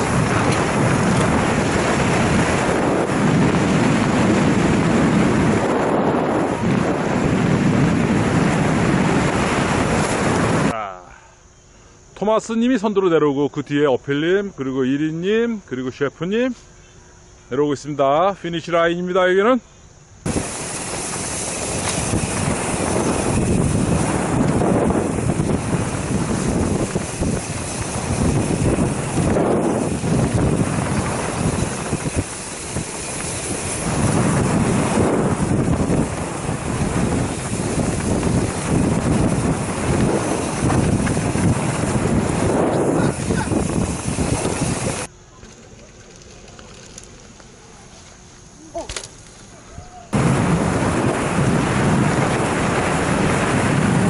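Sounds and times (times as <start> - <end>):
wind buffeting microphone: 0.0 - 10.8, 20.2 - 45.1, 49.6 - 54.0
mountain bike riding noise: 0.0 - 54.0.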